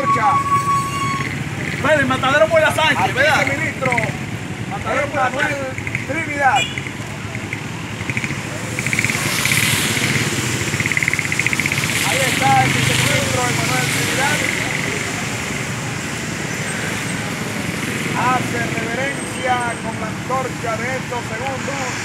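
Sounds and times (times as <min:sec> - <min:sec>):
motor vehicle passing: 0:00.8 - 0:22.0
scattered voices: 0:01.3 - 0:22.0.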